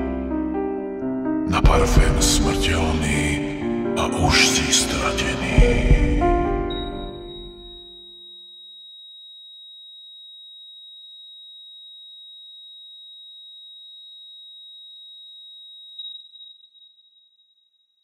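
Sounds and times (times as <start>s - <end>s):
song ending: 0.0s - 7.8s
monitor flatline tone: 5.1s - 8.8s.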